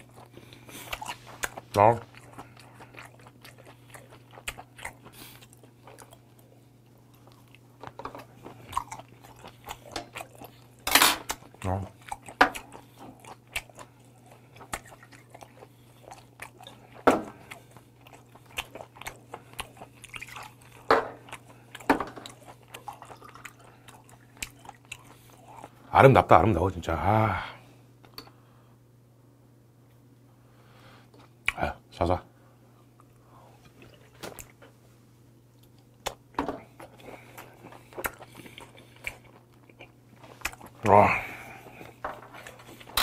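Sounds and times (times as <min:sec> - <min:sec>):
wet chewing mouth sounds: 0:00.0 - 0:25.8, 0:32.8 - 0:34.8, 0:35.6 - 0:43.0
steady low hum: 0:00.0 - 0:43.0.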